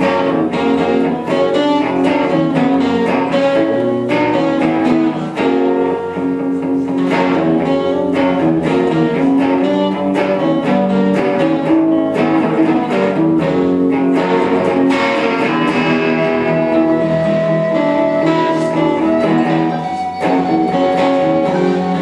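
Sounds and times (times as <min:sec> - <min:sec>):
acoustic guitar strumming: 0:00.0 - 0:22.0
electric guitar: 0:00.0 - 0:22.0
held melody notes: 0:00.0 - 0:22.0.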